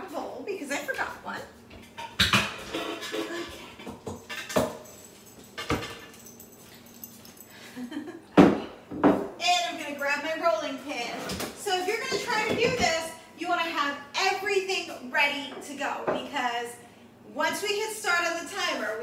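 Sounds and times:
woman speaking: 0:00.0 - 0:01.6, 0:09.4 - 0:19.0
dishes and utensils knocking: 0:01.9 - 0:04.9.

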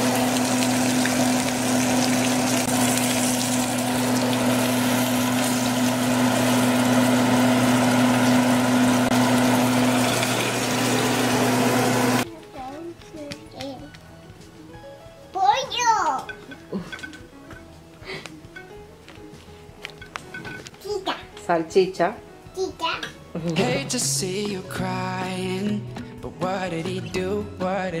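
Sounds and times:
motor whirring with low hum: 0:00.0 - 0:12.2.

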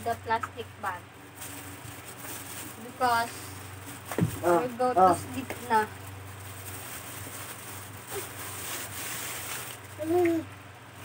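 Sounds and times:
electric fan humming: 0:00.0 - 0:11.0.

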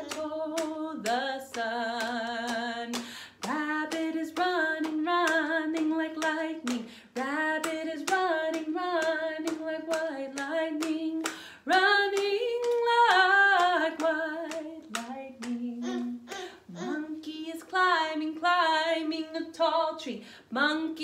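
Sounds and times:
hands clapping a beat: 0:00.0 - 0:17.0
woman singing: 0:00.0 - 0:21.0.

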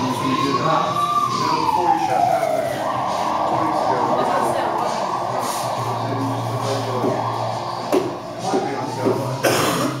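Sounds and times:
indistinct voices: 0:00.0 - 0:10.0
noisy burst: 0:00.0 - 0:10.0.

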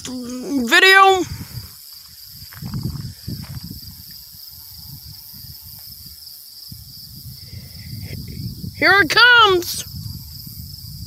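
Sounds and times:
insects chirping chorus: 0:00.0 - 0:11.0.

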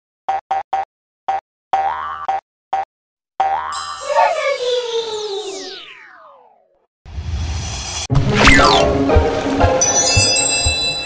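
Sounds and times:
bouncy pitched cartoon notes: 0:03.4 - 0:06.5, 0:08.2 - 0:09.1.

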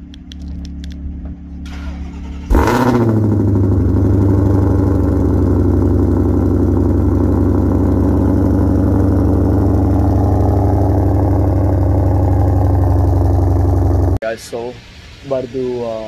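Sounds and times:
car engine idling: 0:00.0 - 0:14.2.

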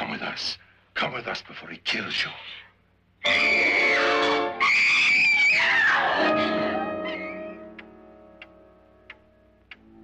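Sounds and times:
woman screaming: 0:04.6 - 0:07.3
dramatic film music: 0:06.0 - 0:10.0.

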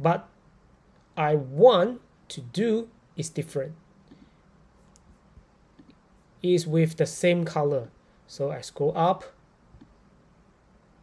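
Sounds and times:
computer mouse clicks: 0:09.8 - 0:10.0.

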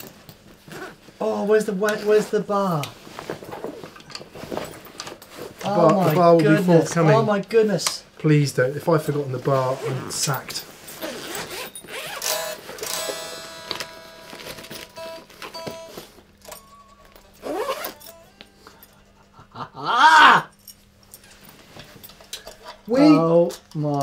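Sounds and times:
bag scraping and rustling: 0:00.0 - 0:01.4, 0:09.4 - 0:13.1, 0:17.4 - 0:18.0
zipper pulled open: 0:00.6 - 0:01.0, 0:09.7 - 0:12.9, 0:17.4 - 0:18.1
person calling out: 0:19.8 - 0:20.5.

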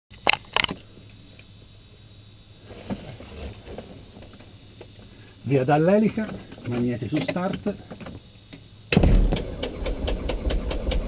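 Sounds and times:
sharp clicks: 0:00.1 - 0:01.5.

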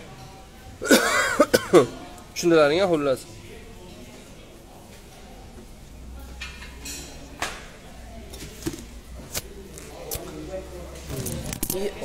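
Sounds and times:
person coughing: 0:00.8 - 0:01.9.

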